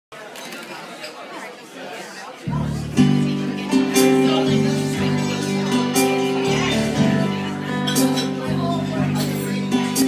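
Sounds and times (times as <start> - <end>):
chatter of many people: 0.1 - 10.0.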